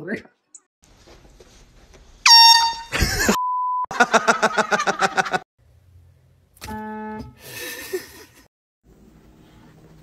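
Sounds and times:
air horn blast: 6.6s - 7.4s.

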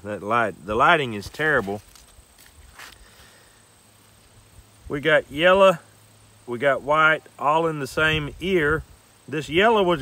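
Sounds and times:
corn husks rustling: 0.0s - 5.9s.

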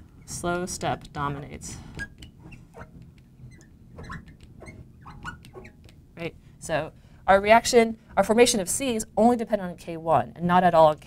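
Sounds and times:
marker squeaking on glass: 1.2s - 5.9s.

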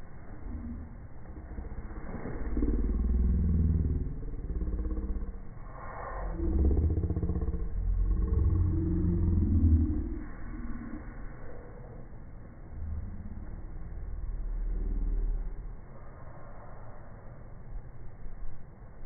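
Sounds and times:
slowed deep rumble: 0.0s - 19.0s.

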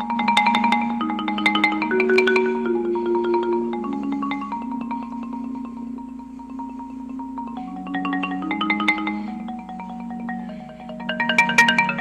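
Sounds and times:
marimba playing: 0.0s - 12.0s.

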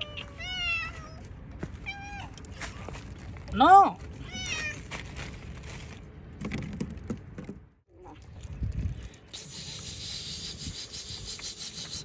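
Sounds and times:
cat meowing: 4.2s - 4.8s.

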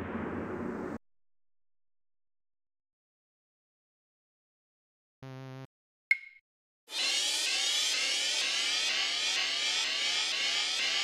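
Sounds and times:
noisy synthesizer note sweeping upward: 6.9s - 11.0s.

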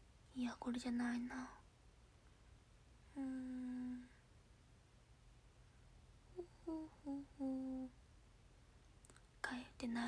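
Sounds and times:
woman humming: 3.1s - 4.2s, 6.3s - 8.0s.

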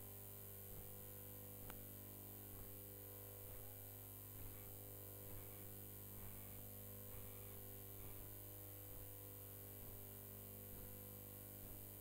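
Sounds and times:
low electrical hum: 0.0s - 12.0s
faint ticks: 0.7s - 12.0s.

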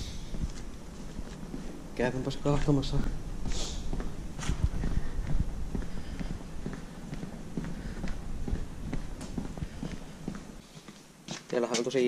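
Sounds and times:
low rumble: 0.0s - 10.6s
footsteps on hard floor: 0.2s - 11.6s.

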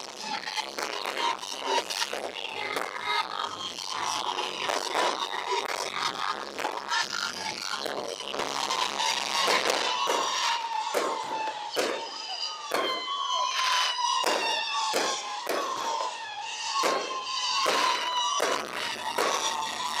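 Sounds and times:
fireworks bursting: 0.0s - 20.0s
fireworks crackle: 0.0s - 20.0s
steady high tone: 8.8s - 20.0s.

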